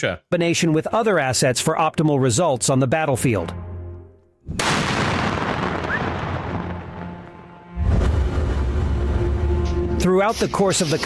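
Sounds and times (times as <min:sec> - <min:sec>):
large explosion with rumble: 0:04.6 - 0:07.2, 0:07.8 - 0:09.2.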